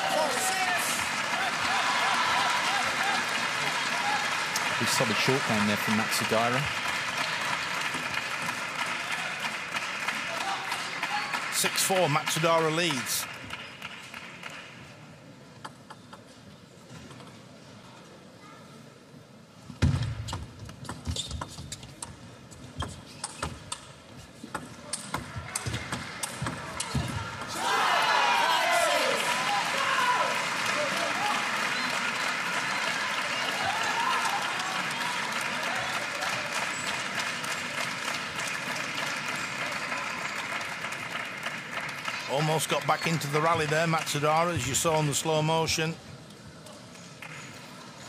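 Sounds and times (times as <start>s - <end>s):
crowd cheering and shouting: 0.0s - 6.6s, 26.8s - 31.8s, 32.6s - 36.5s.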